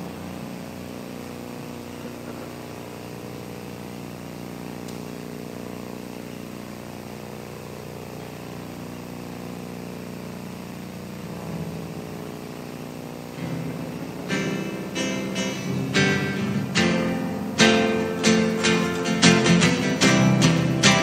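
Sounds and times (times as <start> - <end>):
low drone: 11.1 - 21.0
acoustic guitar strumming: 11.2 - 21.0.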